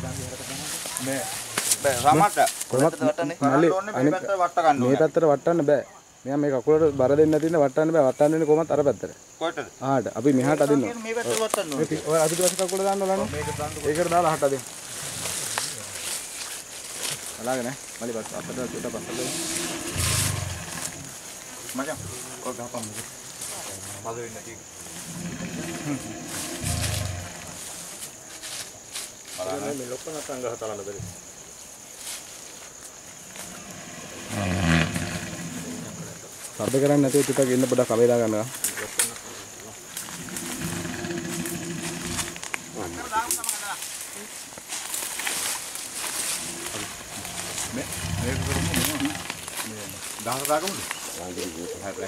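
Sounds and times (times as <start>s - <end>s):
men talking: 0.0s - 16.2s, 17.3s - 24.6s, 29.3s - 31.2s, 35.6s - 44.3s, 46.4s - 52.0s
elephant groaning: 13.0s - 15.7s, 18.1s - 21.2s, 24.9s - 27.8s, 33.3s - 36.2s, 40.0s - 43.1s, 46.3s - 49.5s
faint crackles and clicks: 46.5s - 51.0s.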